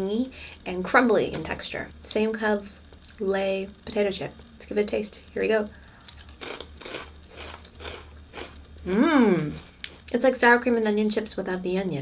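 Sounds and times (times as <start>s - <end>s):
person chewing potato chip: 6.0s - 8.7s.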